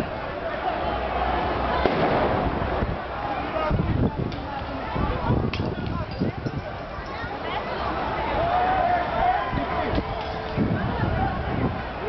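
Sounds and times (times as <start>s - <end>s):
crowd chatter: 0.0s - 12.0s
sharp explosive bang: 1.8s - 2.6s.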